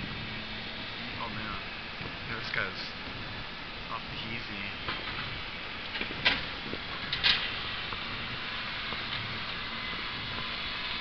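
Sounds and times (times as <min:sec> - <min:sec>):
distant diesel engines running: 0:00.0 - 0:11.0.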